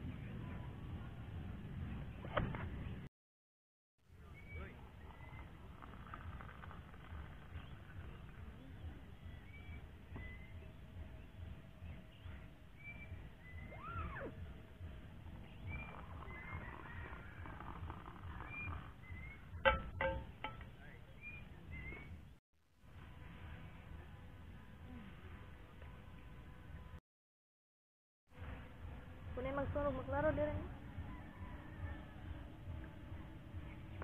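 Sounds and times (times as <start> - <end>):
birds chirping: 4.1 - 22.4
low wind rumble on microphone: 4.6 - 19.7.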